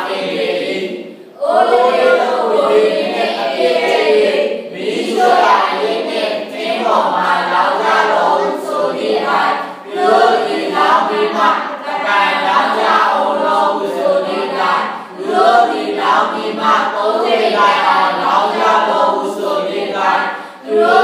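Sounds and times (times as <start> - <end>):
congregation singing: 0.0 - 21.0.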